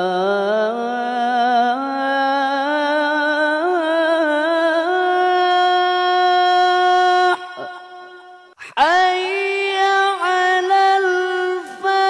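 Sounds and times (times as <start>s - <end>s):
man singing call to prayer: 0.0s - 12.0s.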